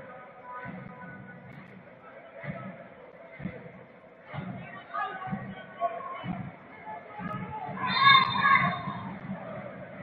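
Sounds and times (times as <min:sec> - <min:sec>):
stadium background: 0:00.0 - 0:10.0
players shouting: 0:07.0 - 0:10.0.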